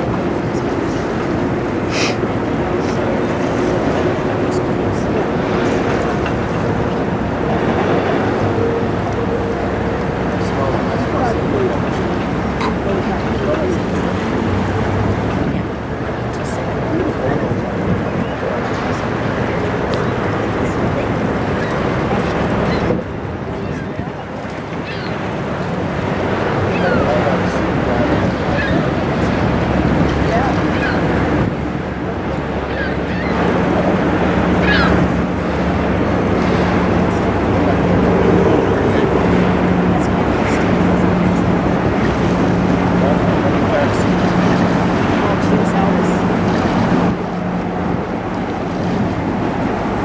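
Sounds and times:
ship machinery humming: 0.0s - 50.0s
water noise: 0.0s - 50.0s
wind buffeting microphone: 0.0s - 50.0s.

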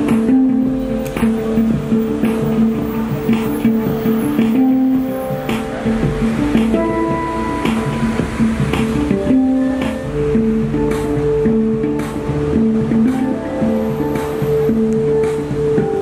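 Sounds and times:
handpan melody: 0.0s - 16.0s.

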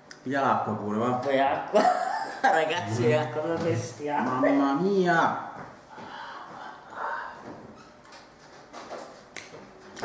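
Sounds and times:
man breathing and throat noises: 5.8s - 7.9s.

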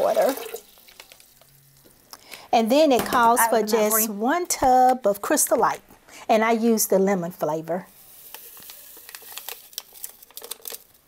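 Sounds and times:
plastic wrapper crinkling: 0.6s - 2.4s, 7.9s - 11.0s.

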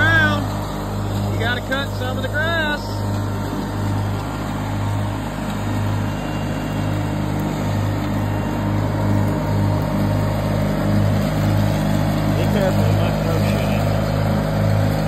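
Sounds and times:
garden tractor engine mowing grass: 0.0s - 15.0s.

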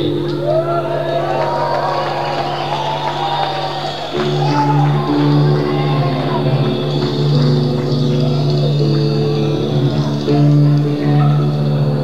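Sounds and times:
held notes shifting in pitch: 2.0s - 12.0s
low drone: 3.7s - 12.0s
live rock band playing: 4.1s - 12.0s.

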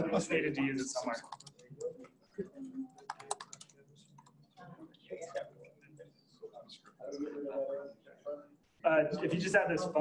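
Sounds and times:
computer keyboard typing: 1.2s - 1.9s, 2.9s - 4.4s.

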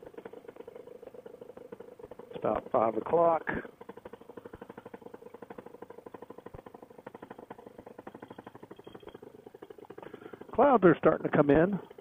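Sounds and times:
paramotor engine idling: 0.0s - 12.0s.

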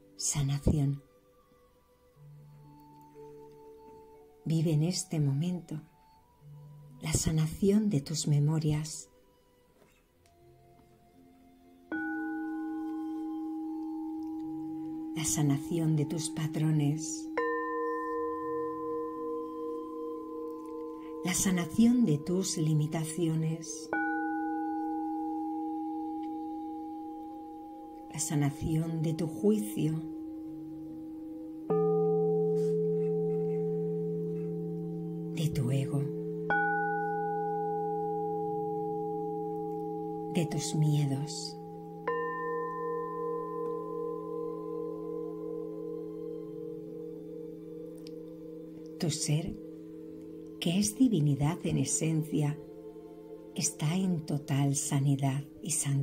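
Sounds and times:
faint soft music: 0.0s - 56.0s
low drone tones: 11.9s - 56.0s
meditation bell ringing: 11.9s - 56.0s.

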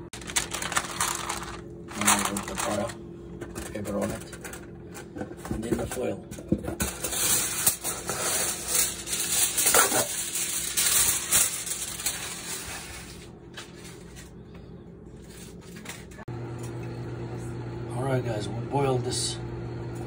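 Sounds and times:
parchment paper crinkling: 0.1s - 3.0s, 7.1s - 14.4s.

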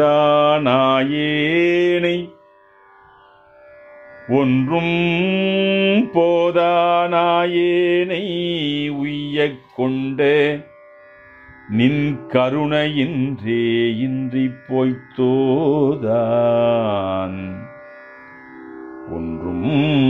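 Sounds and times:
man singing a devotional hymn: 0.0s - 2.3s, 4.3s - 10.7s, 11.7s - 17.7s, 19.1s - 20.0s.

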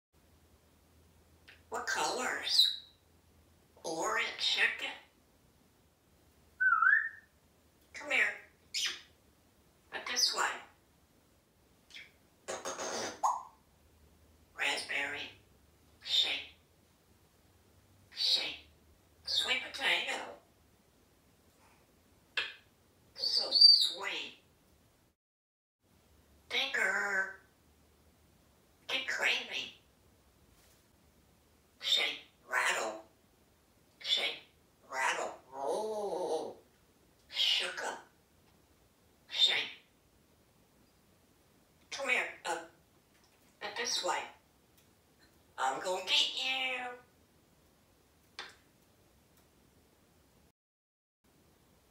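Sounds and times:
parrot mimicking speech: 1.6s - 2.8s, 3.8s - 5.1s, 8.0s - 9.0s, 9.9s - 10.8s, 14.6s - 15.4s, 16.0s - 16.6s, 18.1s - 18.6s, 19.3s - 20.4s, 23.2s - 24.4s, 26.5s - 27.5s, 28.9s - 29.8s, 31.8s - 33.1s, 34.0s - 36.6s, 37.3s - 38.1s, 39.3s - 39.8s, 41.9s - 42.8s, 43.6s - 44.4s, 45.6s - 47.1s
parrot whistling: 6.6s - 7.3s, 23.2s - 23.9s.

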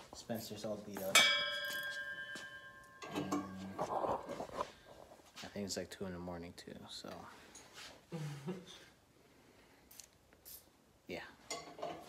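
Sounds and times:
metal clang ringing: 0.9s - 3.7s.

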